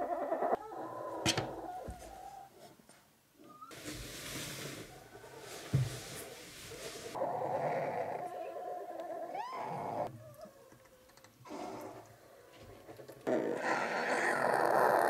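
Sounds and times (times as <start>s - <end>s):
rustling on bedding: 3.7s - 7.2s
thump: 5.7s - 6.0s.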